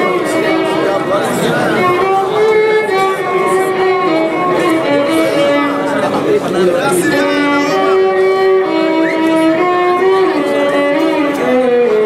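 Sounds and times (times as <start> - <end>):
violin bowed long notes: 0.0 - 12.0.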